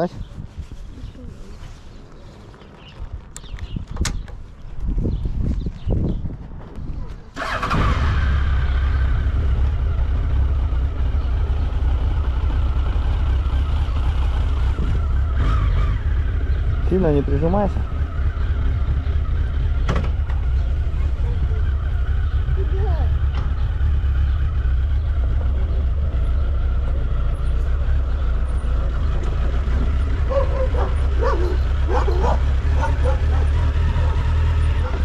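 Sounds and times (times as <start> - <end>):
motorcycle engine starting and idling: 7.3 - 35.0
clicks and low thumps: 14.7 - 15.4.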